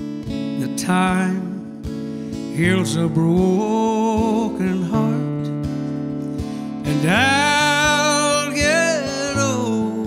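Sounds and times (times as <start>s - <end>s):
acoustic guitar picking: 0.0s - 10.0s
man singing country ballad: 0.5s - 5.7s, 6.4s - 10.0s.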